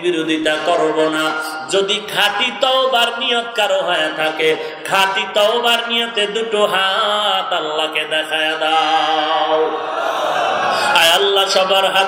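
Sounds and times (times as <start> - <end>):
man chanting melodically: 0.0 - 9.8, 10.9 - 12.0.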